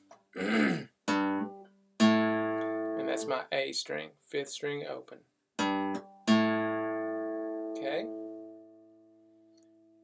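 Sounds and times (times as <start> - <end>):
acoustic guitar bass notes: 0.0 - 3.4, 5.6 - 10.0.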